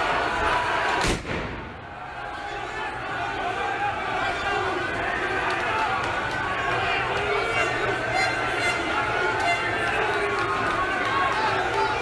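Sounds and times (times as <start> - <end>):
crowd shouting: 0.0 - 12.0.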